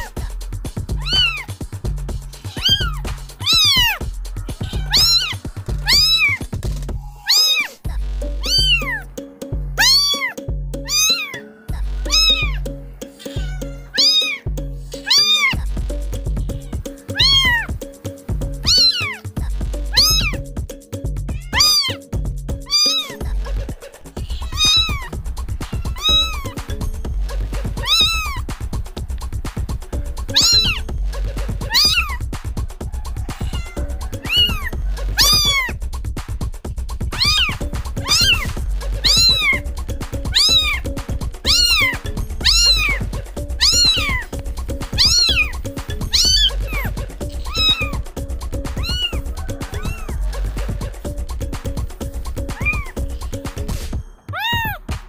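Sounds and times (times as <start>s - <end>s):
background music with low beat: 0.0s - 55.0s
kitten meowing: 1.0s - 1.5s, 2.4s - 6.5s, 7.2s - 7.8s, 8.4s - 9.0s, 9.8s - 11.4s, 12.0s - 12.6s, 13.2s - 14.4s, 15.0s - 15.6s, 16.4s - 17.7s, 18.6s - 19.2s, 19.9s - 20.4s, 21.3s - 22.0s, 22.7s - 23.2s, 24.2s - 26.6s, 27.8s - 28.4s, 30.3s - 30.8s, 31.7s - 32.2s, 33.2s - 35.8s, 37.1s - 39.6s, 40.3s - 44.3s, 44.9s - 48.0s, 48.8s - 50.2s, 52.5s - 53.5s, 54.3s - 54.8s.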